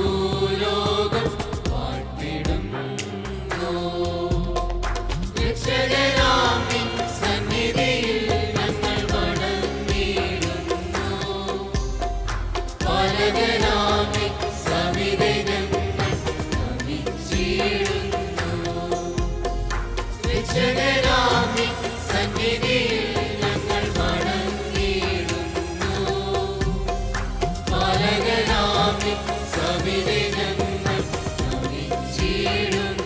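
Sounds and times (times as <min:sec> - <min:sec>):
choir singing: 0:00.0 - 0:33.0
percussion: 0:00.0 - 0:33.0.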